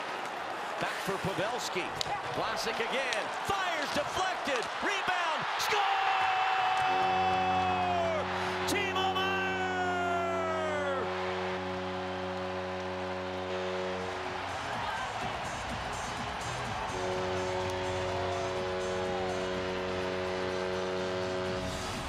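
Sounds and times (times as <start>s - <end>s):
crowd cheering: 0.0s - 22.0s
goal horn chord: 6.7s - 22.0s.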